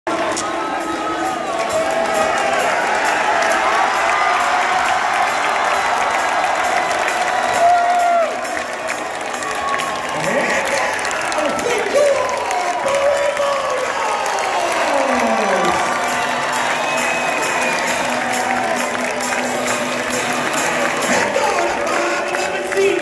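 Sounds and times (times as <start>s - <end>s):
crowd applauding and cheering: 0.1s - 23.0s.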